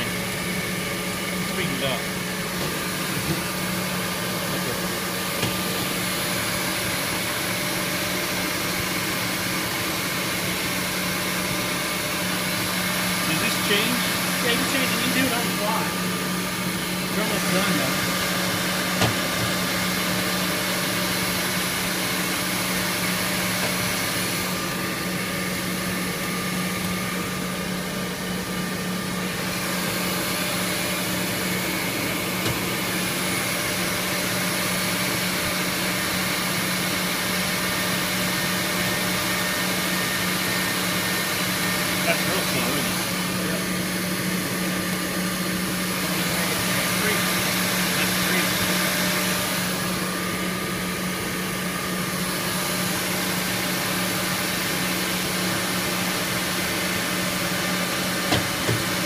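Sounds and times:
drilling machine humming: 0.0s - 59.0s.

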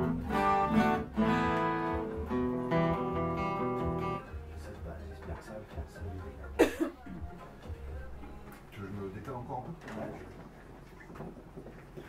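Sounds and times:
person coughing: 6.6s - 7.2s.

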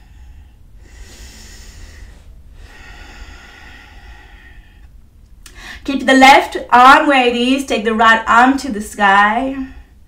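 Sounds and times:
woman breathing: 0.0s - 5.9s.

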